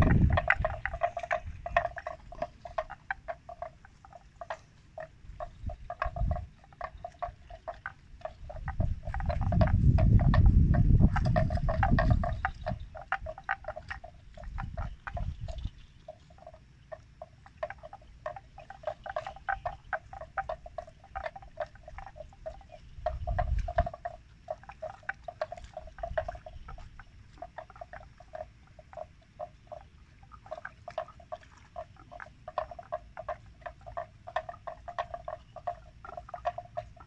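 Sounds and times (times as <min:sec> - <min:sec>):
buffalo tearing and chewing grass: 0:00.0 - 0:37.0.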